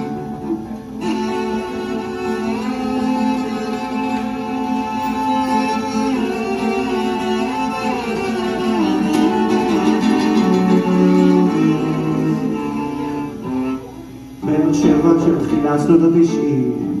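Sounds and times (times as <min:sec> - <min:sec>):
cello sliding notes: 0:00.0 - 0:17.0
plucked guitar: 0:00.0 - 0:17.0.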